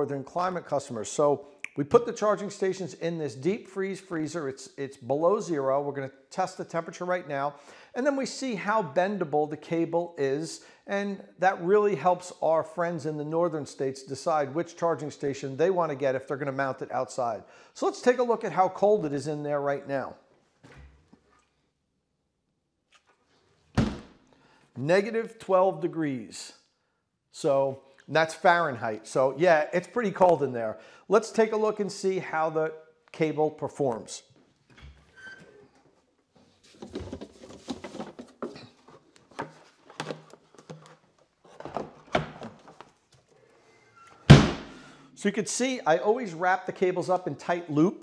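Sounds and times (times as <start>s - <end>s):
freezer lid slamming: 23.8s - 24.1s, 44.3s - 44.8s
handling knocks and clunks: 36.7s - 43.0s, 44.1s - 44.8s.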